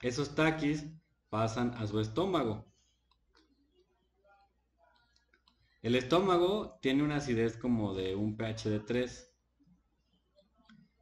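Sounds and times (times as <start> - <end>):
person speaking: 0.0 - 9.4
stylus tapping on tablet screen: 2.8 - 5.8, 9.5 - 11.0.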